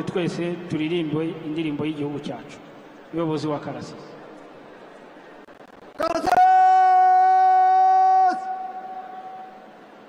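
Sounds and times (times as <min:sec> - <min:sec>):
faint crowd background: 0:00.0 - 0:10.0
shout echoing in stadium: 0:05.8 - 0:10.0.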